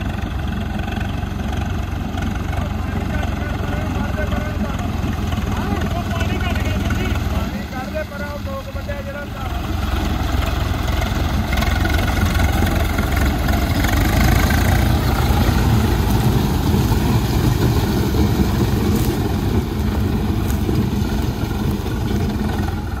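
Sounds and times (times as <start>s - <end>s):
tractor diesel engine running: 0.0s - 23.0s.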